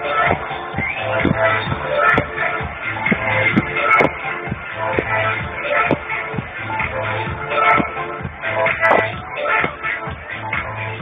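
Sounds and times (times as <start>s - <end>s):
loud techno music: 0.0s - 11.0s
kick drum: 0.3s - 10.7s.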